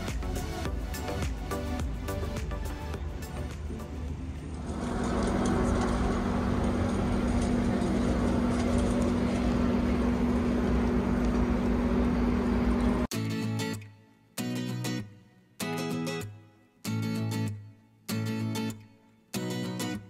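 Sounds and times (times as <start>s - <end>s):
background music: 0.0s - 6.5s
low hum: 2.1s - 13.1s
mechanical rumble: 3.1s - 13.1s.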